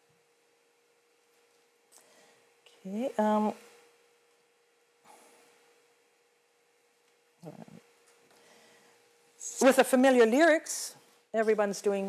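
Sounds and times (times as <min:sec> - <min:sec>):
faint steady hum: 0:00.0 - 0:12.0
soft breath-like noise: 0:08.3 - 0:09.1.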